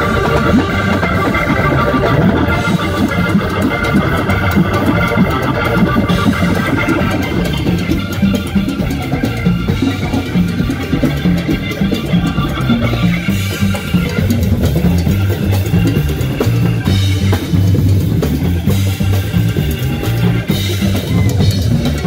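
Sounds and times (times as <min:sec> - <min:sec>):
electric organ chords: 0:00.0 - 0:22.0
live latin rock band: 0:00.0 - 0:22.0.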